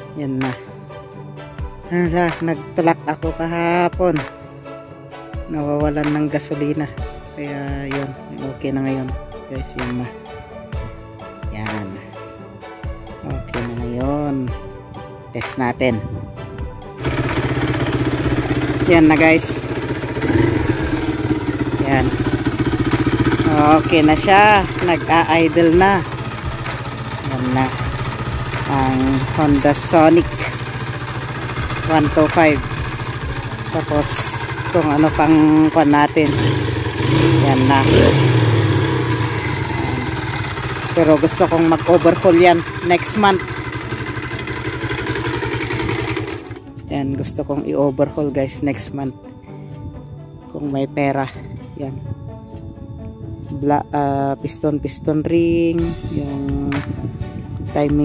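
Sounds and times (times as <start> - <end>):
motorcycle engine idling: 17.0 - 46.8.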